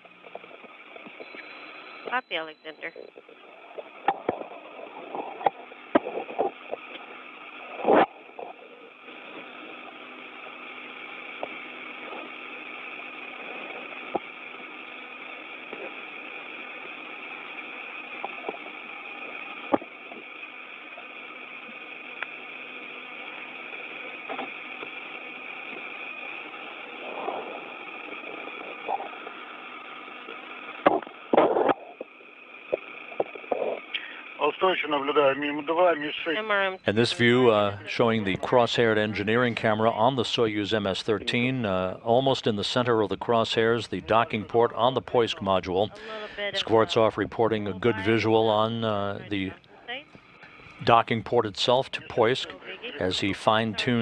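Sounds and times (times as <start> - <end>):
faint hum: 0.0 - 54.0
radio clicks and crackles: 0.0 - 54.0
radio static hiss: 0.0 - 54.0.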